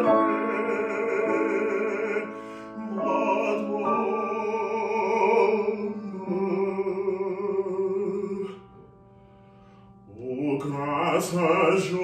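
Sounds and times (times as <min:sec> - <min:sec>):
man singing classically: 0:00.0 - 0:08.8, 0:10.0 - 0:12.0
piano notes: 0:00.0 - 0:12.0.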